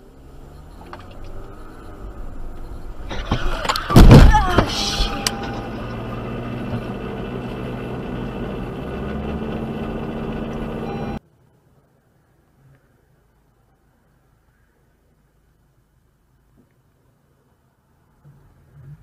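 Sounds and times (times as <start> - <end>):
road and engine noise: 0.0 - 19.0
car crash: 3.0 - 5.7.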